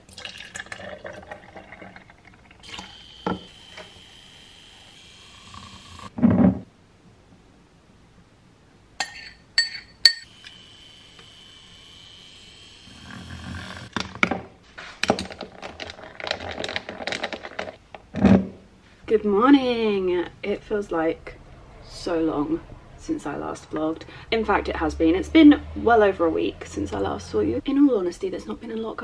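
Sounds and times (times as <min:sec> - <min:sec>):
liquid pouring into glass jar: 0:00.0 - 0:02.9
glass clinks: 0:09.0 - 0:10.3.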